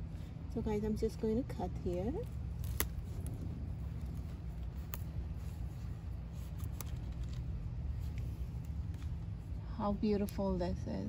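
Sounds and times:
steady low rumble: 0.0s - 11.0s
knife crunching through stalk: 2.2s - 7.5s.

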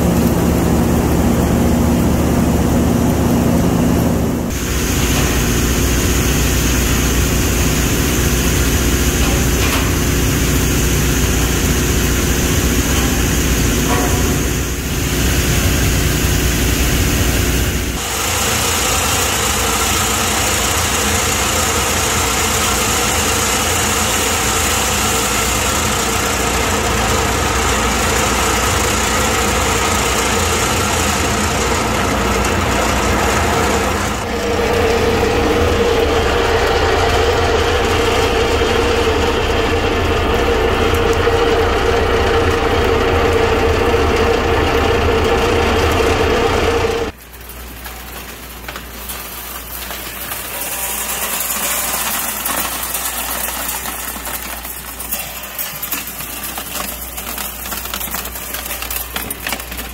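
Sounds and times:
recycling machinery humming: 0.0s - 59.9s.

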